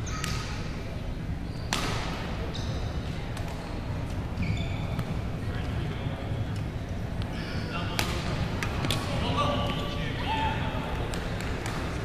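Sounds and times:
murmur of voices in a hall: 0:00.0 - 0:12.0
shoes squeaking on court: 0:01.4 - 0:05.3
racket striking shuttlecock: 0:01.7 - 0:02.2.

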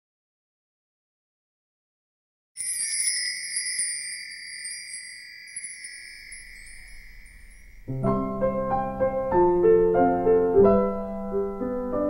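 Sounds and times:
bright chime ringing: 0:02.6 - 0:08.1.

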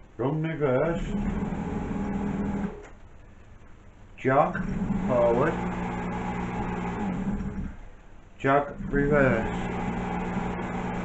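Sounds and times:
lathe motor humming: 0:00.9 - 0:02.8, 0:04.4 - 0:07.8, 0:08.6 - 0:11.0.

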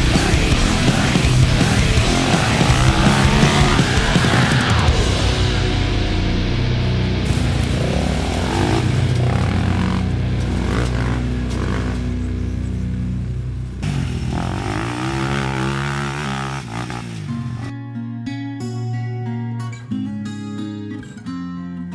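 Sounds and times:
quad bike engine revving: 0:00.0 - 0:05.0, 0:07.2 - 0:17.7
acoustic guitar strumming: 0:00.0 - 0:14.1, 0:14.8 - 0:21.9
heavy metal music: 0:00.0 - 0:18.9.

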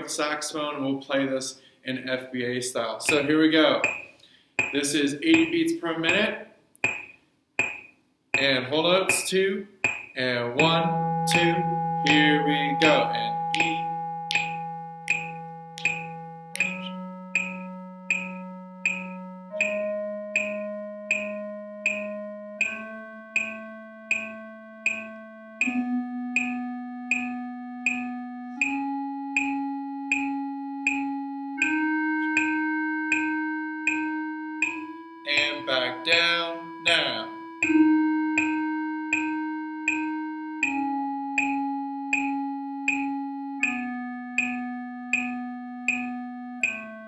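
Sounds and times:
metronome clicks: 0:03.0 - 0:47.0
man's voice: 0:08.4 - 0:14.0, 0:35.3 - 0:37.4
electronic keyboard notes: 0:09.3 - 0:47.0.

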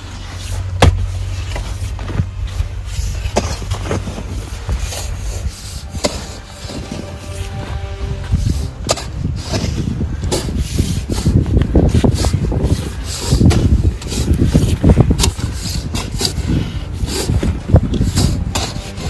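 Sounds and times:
stones sliding and rattling: 0:00.0 - 0:07.4, 0:08.8 - 0:19.0
mattock striking stony soil: 0:00.0 - 0:19.0
background music: 0:04.3 - 0:11.2, 0:16.0 - 0:19.0.

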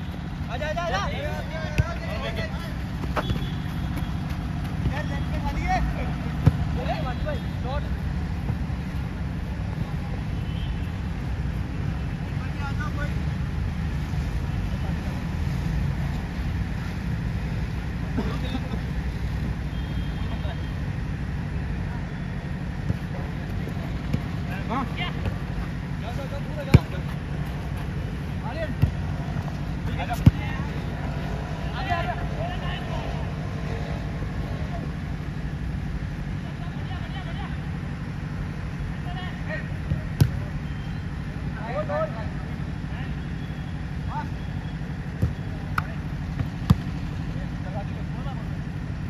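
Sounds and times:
ball being kicked: 0:01.7 - 0:02.0, 0:02.9 - 0:05.1, 0:06.3 - 0:06.8, 0:26.7 - 0:27.1, 0:28.7 - 0:30.6, 0:39.8 - 0:40.4, 0:45.1 - 0:47.0.

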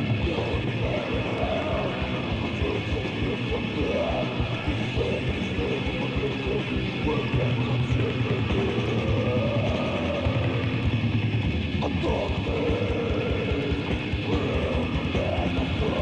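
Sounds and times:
distorted guitars: 0:00.0 - 0:16.0
rapid dense drumming: 0:00.0 - 0:16.0
wavering guitar or vocal line: 0:00.0 - 0:16.0.

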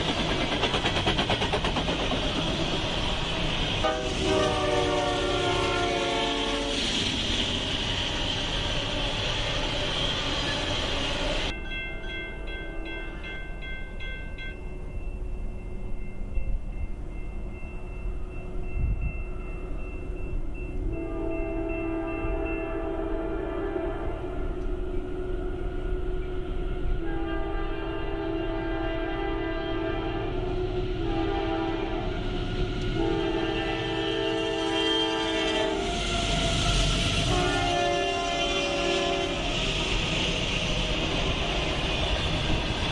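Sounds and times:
train cars rushing past: 0:00.0 - 0:14.2, 0:14.8 - 0:42.9
low train rumble: 0:00.0 - 0:42.9
locomotive air horn blasts: 0:03.8 - 0:06.8, 0:21.0 - 0:32.2, 0:32.9 - 0:39.5.

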